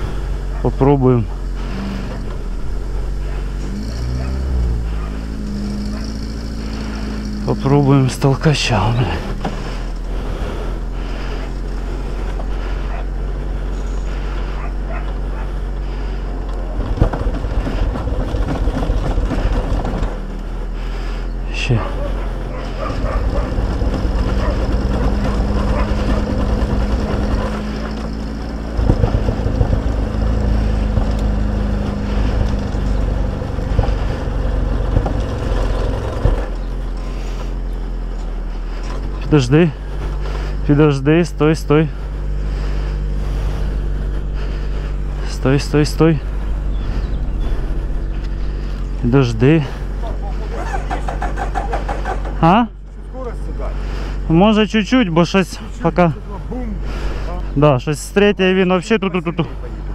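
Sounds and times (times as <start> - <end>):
wind rumble: 0.0 - 54.0
engine drone: 0.0 - 59.9.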